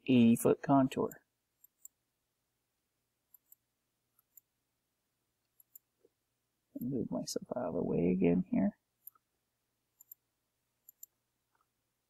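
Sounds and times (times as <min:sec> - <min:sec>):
computer mouse clicks: 0:01.6 - 0:02.0, 0:03.3 - 0:03.6, 0:04.2 - 0:04.5, 0:05.4 - 0:05.9, 0:10.0 - 0:10.2, 0:10.8 - 0:11.7.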